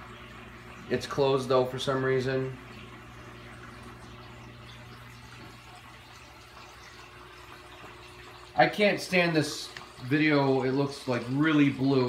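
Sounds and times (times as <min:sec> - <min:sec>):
aquarium pump hum: 0:00.0 - 0:12.0.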